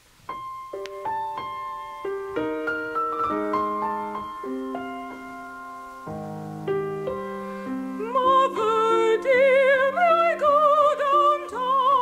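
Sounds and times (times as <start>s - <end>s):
slow piano: 0.0s - 12.0s
woman singing with vibrato: 8.0s - 12.0s.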